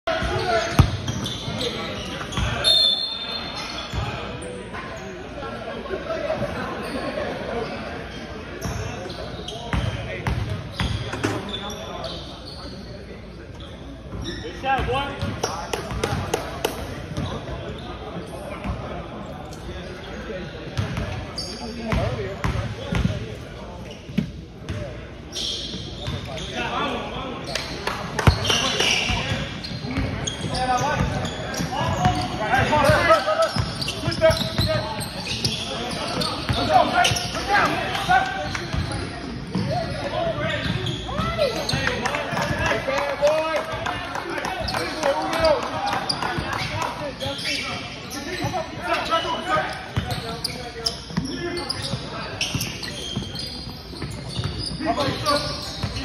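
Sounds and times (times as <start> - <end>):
players shouting calls: 30.2 - 53.7.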